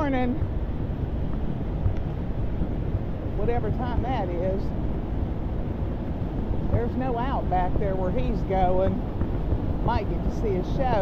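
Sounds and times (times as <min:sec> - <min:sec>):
vehicle rumble: 0:00.0 - 0:11.0
wind buffeting microphone: 0:00.0 - 0:11.0.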